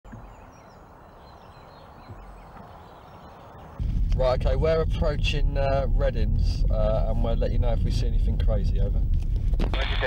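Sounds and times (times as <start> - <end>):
low wind rumble: 0.1 - 10.0.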